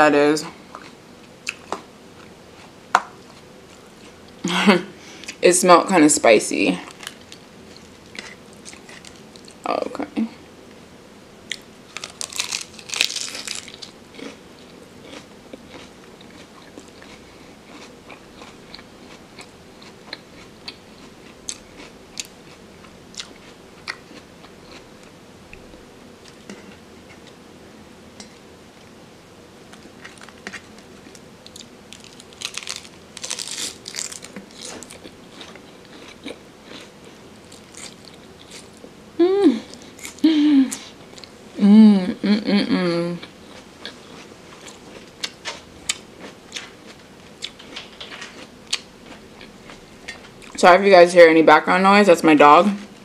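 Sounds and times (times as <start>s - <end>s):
chewing with small crunches: 0.6s - 4.4s, 6.8s - 9.6s, 11.5s - 27.4s, 29.6s - 38.9s, 39.7s - 41.4s, 43.2s - 50.6s
crunchy bites into lettuce: 11.5s - 14.4s, 29.7s - 38.7s.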